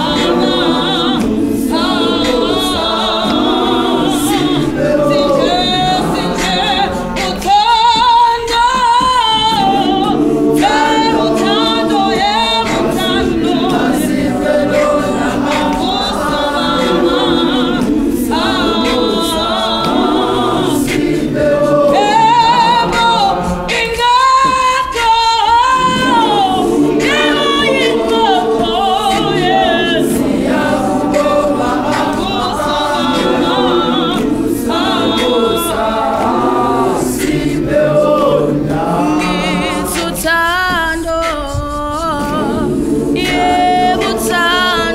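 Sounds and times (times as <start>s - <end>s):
choir singing a cappella: 0.0s - 44.9s
lead voice singing: 0.0s - 44.9s.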